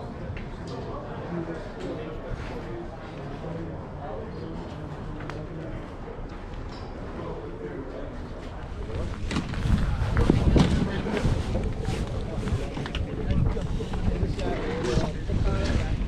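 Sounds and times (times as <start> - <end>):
murmur of distant voices: 0.0 - 16.0
wind buffeting microphone: 8.7 - 16.0.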